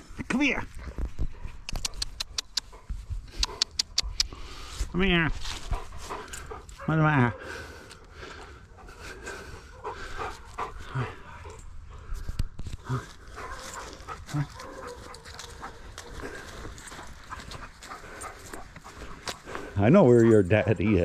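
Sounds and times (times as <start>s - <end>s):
dog panting: 0.8s - 4.7s, 5.4s - 21.0s
dog low vocal sounds: 5.6s - 21.0s.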